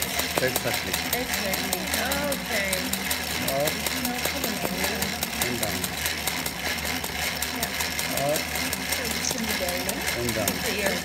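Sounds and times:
sewing machine needle clatter: 0.0s - 11.0s.

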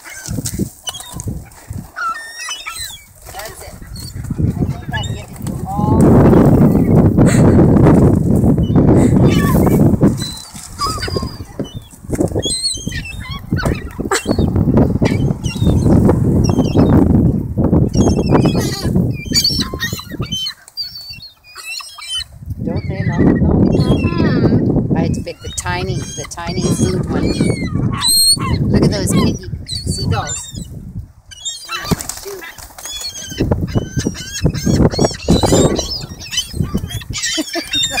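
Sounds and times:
gulls squealing: 0.0s - 7.8s, 8.6s - 17.0s, 17.9s - 38.0s
wings flapping: 0.0s - 14.5s, 31.5s - 38.0s.

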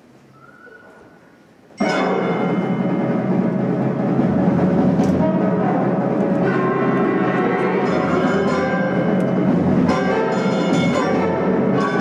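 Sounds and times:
concert band sustained chords: 1.8s - 12.0s
low timpani strokes: 1.8s - 12.0s
short percussion hits: 1.8s - 12.0s.

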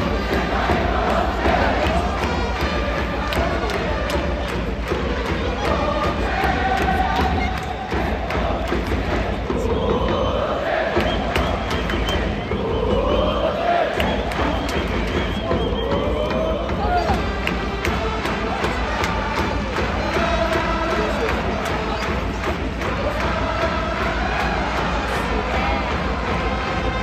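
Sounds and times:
crowd singing a chant: 0.0s - 27.0s
steady beat: 0.0s - 27.0s.

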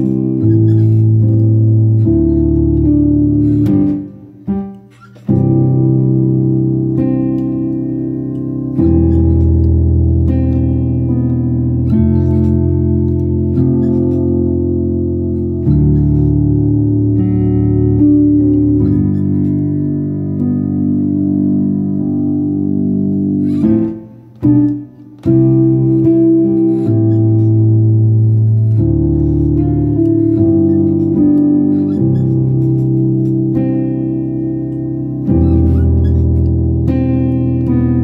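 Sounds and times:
piano playing slow chords: 0.0s - 38.0s.

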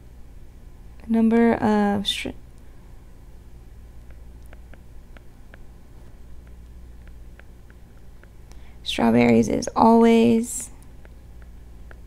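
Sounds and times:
low steady hum: 0.0s - 12.0s
stylus tapping tablet screen: 4.0s - 8.6s, 10.8s - 12.0s
person speaking: 6.4s - 10.9s.

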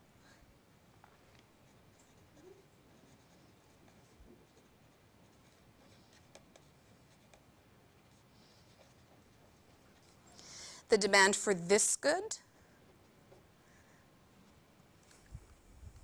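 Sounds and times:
pen writing on paper: 1.9s - 10.1s.

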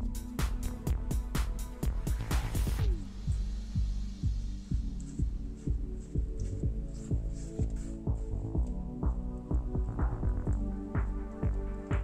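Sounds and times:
background music with low beat: 0.0s - 12.0s.

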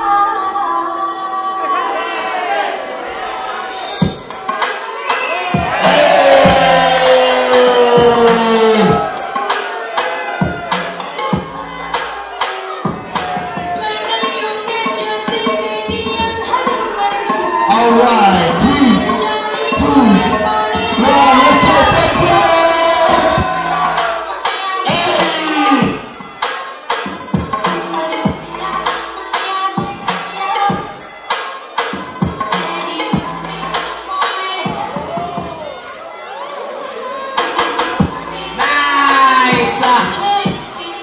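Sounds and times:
crowd cheering and shouting: 1.4s - 41.0s
dance music with drum beat: 3.9s - 41.0s.

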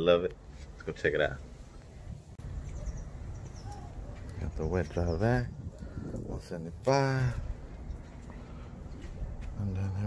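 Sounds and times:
steady low rumble: 1.3s - 10.0s
small bird chirping: 2.6s - 4.6s.

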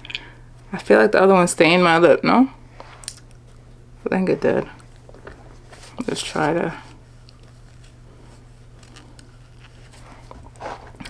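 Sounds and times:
steady low hum: 0.0s - 11.0s
tissue rustling on lips: 5.0s - 11.0s.

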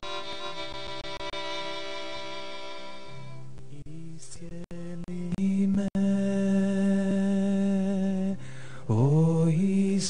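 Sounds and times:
slow devotional singing: 3.6s - 10.0s.

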